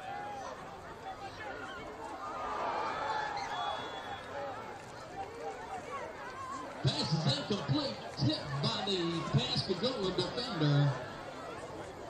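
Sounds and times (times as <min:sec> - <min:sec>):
crowd chatter: 0:00.0 - 0:12.0
man talking: 0:06.8 - 0:11.0.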